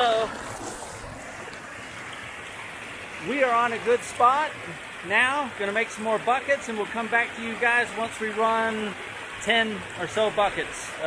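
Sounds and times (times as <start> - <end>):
river rushing over stones: 0.0 - 11.0.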